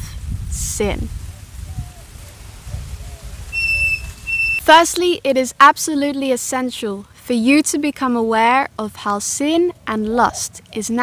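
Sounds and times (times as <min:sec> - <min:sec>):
faint short calls: 0:03.1 - 0:04.7
high steady whistled note: 0:03.5 - 0:04.7.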